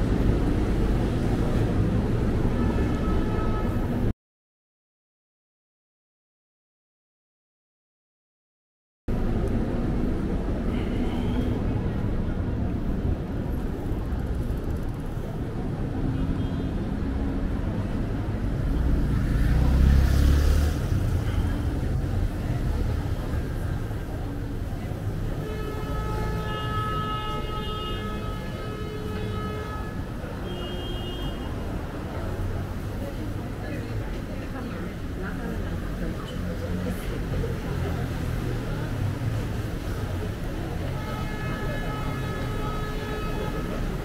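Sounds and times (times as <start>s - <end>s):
low traffic rumble: 0.0s - 4.1s, 9.1s - 44.0s
vehicle passing: 18.6s - 23.4s.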